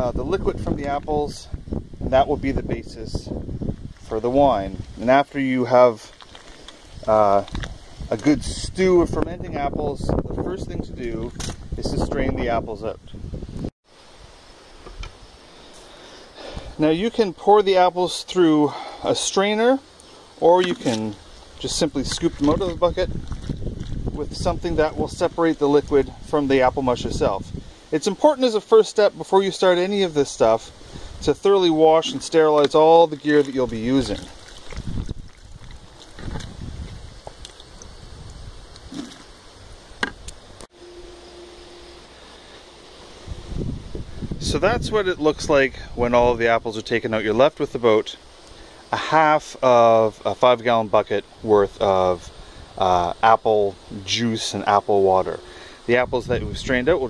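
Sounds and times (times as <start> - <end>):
wind buffeting microphone: 0.0 - 5.0, 6.8 - 13.7, 20.7 - 27.8, 33.4 - 40.6, 43.2 - 46.7, 55.1 - 57.0.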